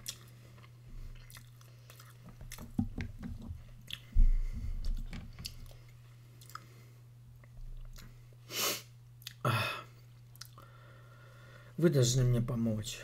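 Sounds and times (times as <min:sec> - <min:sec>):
chewing and crunching food: 0:00.0 - 0:02.8, 0:03.6 - 0:04.2, 0:04.8 - 0:08.3, 0:10.1 - 0:10.7.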